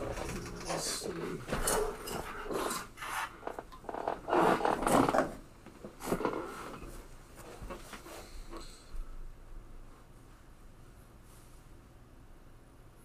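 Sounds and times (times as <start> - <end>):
rubbing and scraping noises: 0.0 - 8.3.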